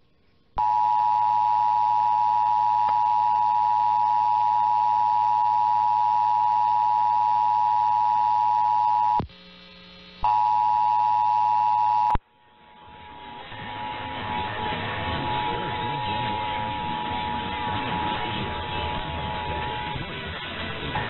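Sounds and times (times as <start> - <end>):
faint radio receiver noise: 0.6 - 21.0.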